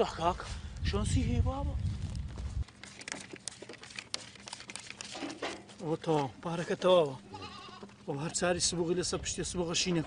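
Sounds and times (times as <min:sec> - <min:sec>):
goats bleating: 0:07.2 - 0:08.0.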